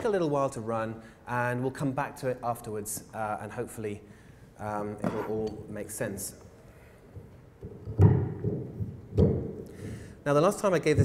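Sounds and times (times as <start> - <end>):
microphone handling thumps: 7.2 - 10.0.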